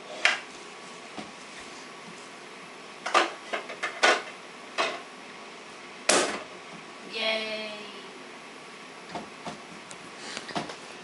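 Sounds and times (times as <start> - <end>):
wooden toy kitchen knocks and clatter: 3.1 - 5.0.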